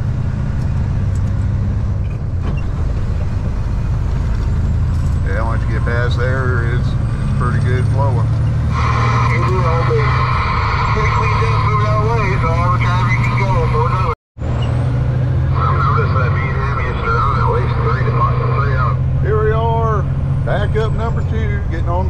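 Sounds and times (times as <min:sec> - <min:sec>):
diesel truck engine droning: 0:00.0 - 0:22.0
indistinct voices: 0:05.2 - 0:14.2, 0:15.4 - 0:22.0.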